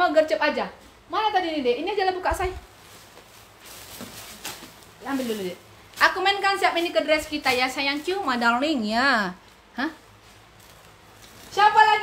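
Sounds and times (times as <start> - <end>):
clothing rustling: 2.3 - 8.7, 9.4 - 12.0.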